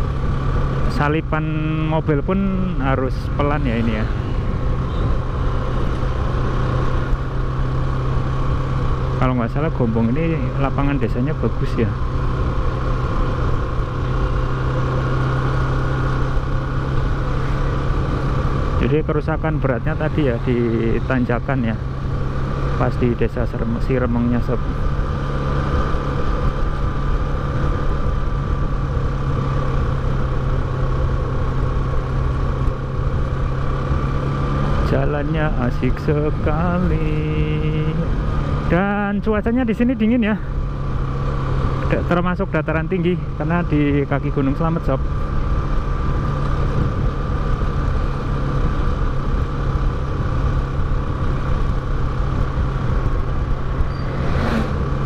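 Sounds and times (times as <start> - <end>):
motorcycle engine cruising: 0.0 - 55.0
road and wind rumble: 0.0 - 55.0.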